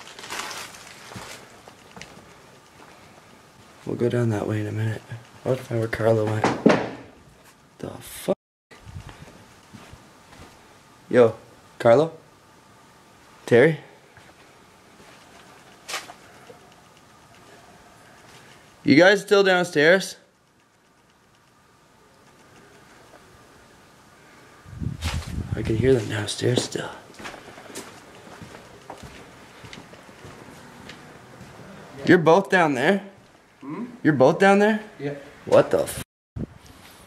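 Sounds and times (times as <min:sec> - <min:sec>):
rustling: 0:00.0 - 0:03.9, 0:24.8 - 0:26.2
soft footsteps: 0:00.0 - 0:03.9, 0:08.8 - 0:10.6, 0:14.2 - 0:16.3, 0:24.9 - 0:31.7
room hiss: 0:00.0 - 0:37.0
sharp crack or knock: 0:06.4 - 0:07.1.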